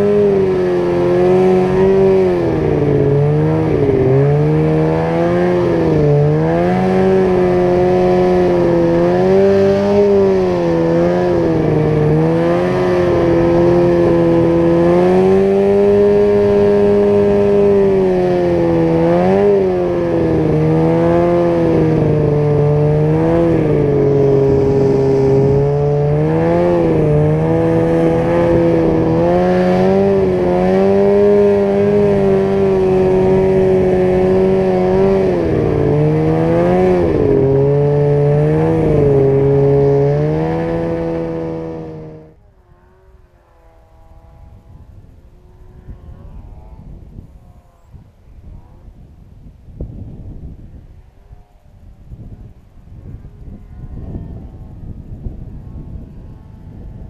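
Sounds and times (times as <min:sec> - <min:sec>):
snowmobile engine revving: 0:00.0 - 0:49.0, 0:52.4 - 0:57.0.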